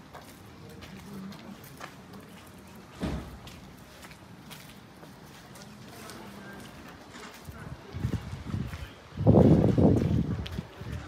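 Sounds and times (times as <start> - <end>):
footsteps walking: 0.0 - 11.0
wind buffeting microphone: 7.4 - 11.0.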